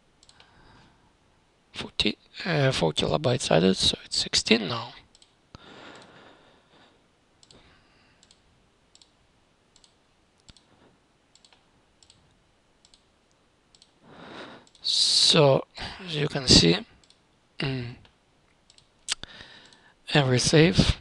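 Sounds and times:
computer mouse clicking: 0.2s - 0.5s, 5.1s - 6.1s, 7.4s - 7.6s, 8.2s - 10.7s, 11.3s - 13.1s, 13.7s - 14.0s, 14.6s - 14.8s, 17.0s - 17.2s, 18.0s - 19.8s
soft breathy hiss: 14.0s - 17.0s.

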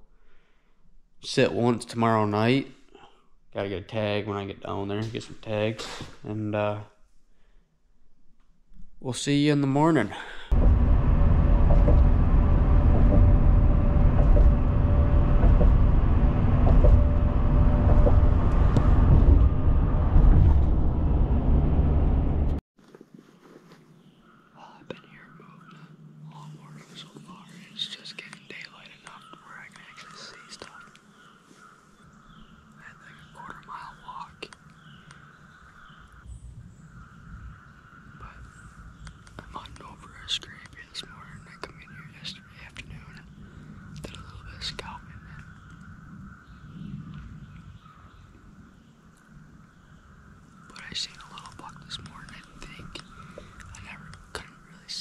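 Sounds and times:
car cabin road and engine noise: 10.5s - 22.6s
man whispering: 24.6s - 31.0s, 32.8s - 34.6s, 38.2s - 38.6s, 39.3s - 43.4s, 44.0s - 45.6s, 50.7s - 55.0s.

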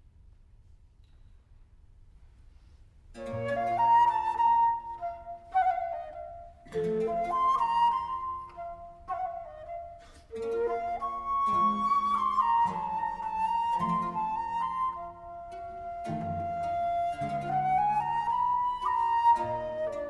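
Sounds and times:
wooden flute melody: 3.1s - 20.0s
lower accompaniment: 3.2s - 20.0s.

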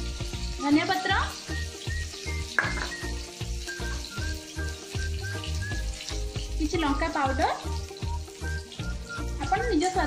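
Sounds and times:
chillies sizzling in oil: 0.0s - 10.0s.

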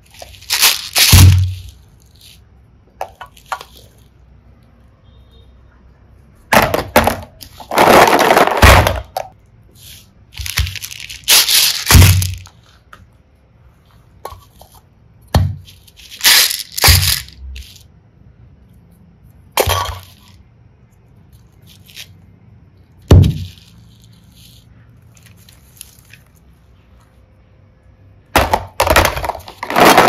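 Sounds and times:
plastic cases clacking and rattling: 28.4s - 30.0s.

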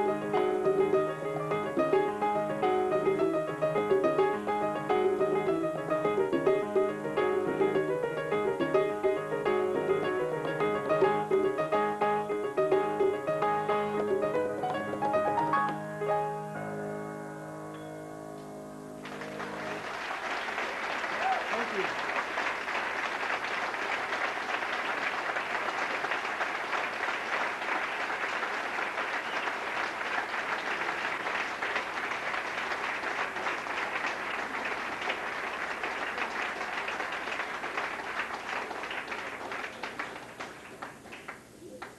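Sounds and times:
piano notes: 0.0s - 20.6s
audience applauding: 19.0s - 41.9s.

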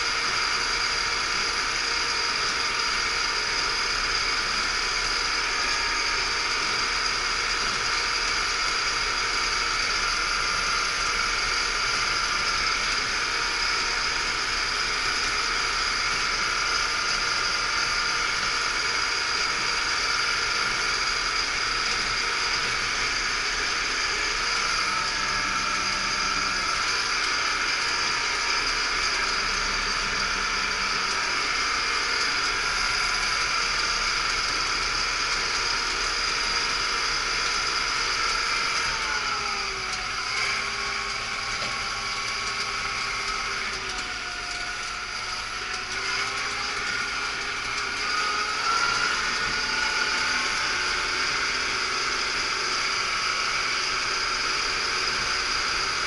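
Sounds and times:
tractor engine drone: 0.0s - 56.0s.

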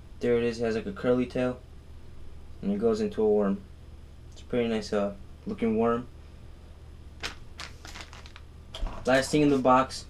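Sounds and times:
plastic lures and packaging rustling: 7.2s - 8.5s.

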